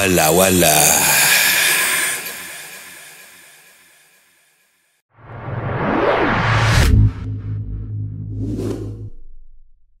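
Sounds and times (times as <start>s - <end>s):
whoosh sound effect: 8.2s - 9.1s.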